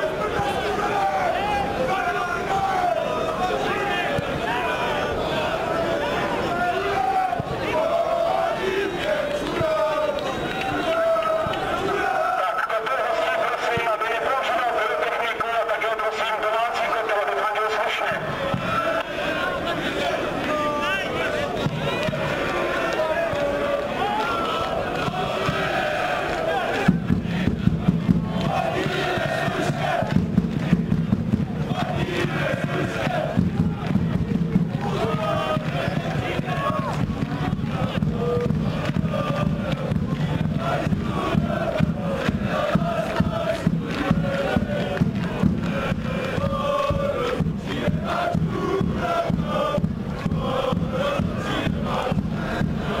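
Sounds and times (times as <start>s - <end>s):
crowd chanting: 0.0s - 53.0s.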